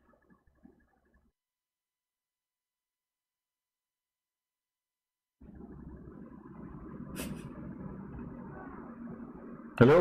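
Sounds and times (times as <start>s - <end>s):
low rumbling line noise: 5.4s - 10.0s.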